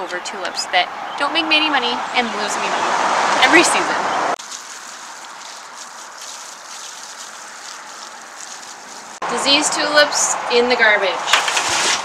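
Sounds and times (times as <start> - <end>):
faint rustles: 4.4 - 9.2.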